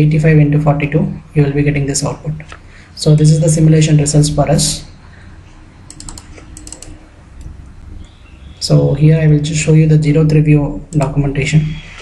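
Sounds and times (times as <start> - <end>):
faint low hum: 0.0 - 12.0
computer keys clicking: 5.9 - 7.5, 10.9 - 11.2.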